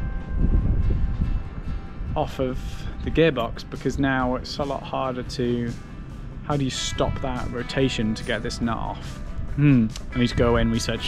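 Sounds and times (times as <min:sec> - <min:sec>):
faint background music: 0:00.0 - 0:11.0
wind buffeting microphone: 0:00.0 - 0:11.0.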